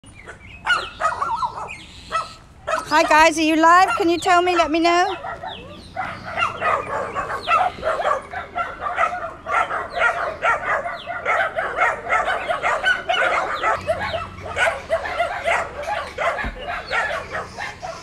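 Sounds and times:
dogs barking: 0.1 - 18.0.

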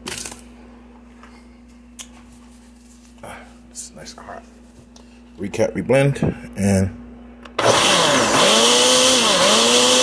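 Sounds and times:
faint steady hum: 0.0 - 7.6.

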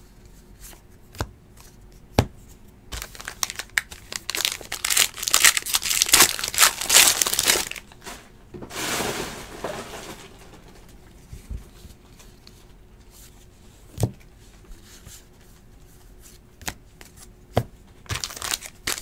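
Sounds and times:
plastic wrapper crinkling and tearing: 2.9 - 8.0, 18.1 - 19.0.

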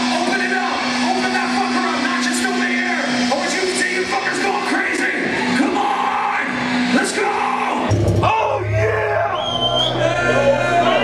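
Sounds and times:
metal band playing: 0.0 - 11.0
crowd shouting: 5.2 - 11.0.

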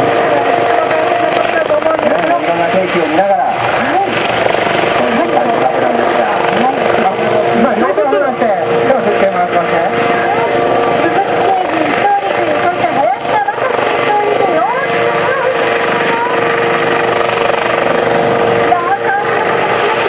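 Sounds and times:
helicopter flying past: 0.0 - 20.0
people's voices: 0.0 - 20.0.

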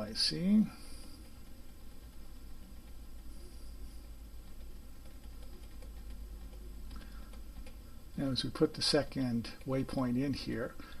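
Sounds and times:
steady low hum: 0.0 - 11.0
computer mouse clicks: 4.0 - 7.8.

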